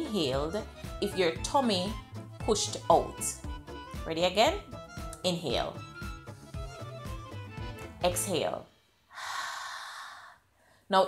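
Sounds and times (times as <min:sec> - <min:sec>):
woman exhaling through mouth: 0:09.1 - 0:10.4.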